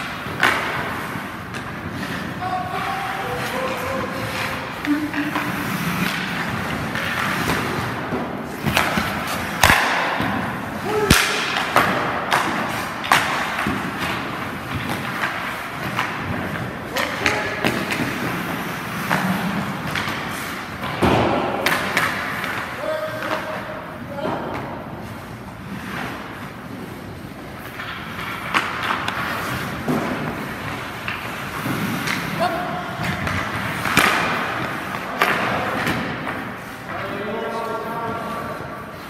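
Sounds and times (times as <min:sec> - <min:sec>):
skate blades scraping ice: 0:00.0 - 0:24.0, 0:24.8 - 0:39.0
sticks and pucks knocking: 0:00.0 - 0:24.7, 0:26.0 - 0:37.1.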